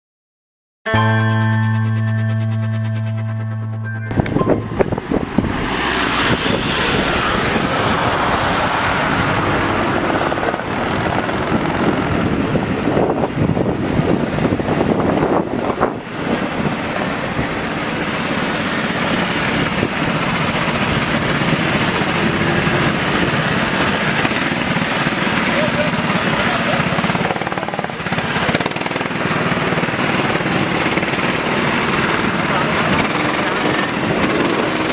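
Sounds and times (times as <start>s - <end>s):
racing car engines: 4.2s - 11.5s.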